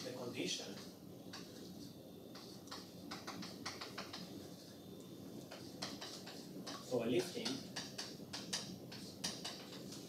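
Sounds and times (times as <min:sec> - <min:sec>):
chalk tapping and scratching on blackboard: 0:00.8 - 0:04.8, 0:05.4 - 0:10.0.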